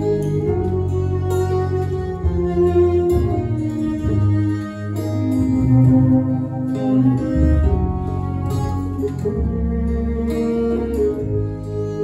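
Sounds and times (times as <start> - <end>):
acoustic guitar: 0.0 - 12.0
bowed fiddle melody: 0.0 - 12.0
double bass: 0.0 - 12.0.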